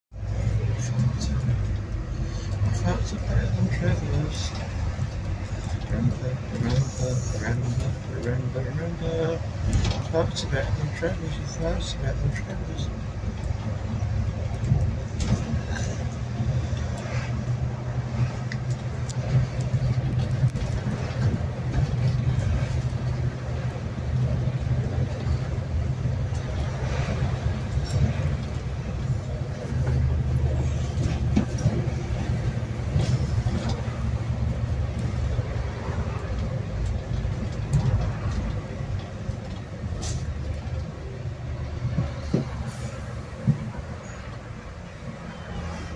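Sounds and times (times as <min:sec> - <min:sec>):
bus engine drone: 0:00.1 - 0:45.9
rattles and clicks: 0:09.6 - 0:10.5, 0:13.2 - 0:17.4, 0:18.2 - 0:40.9.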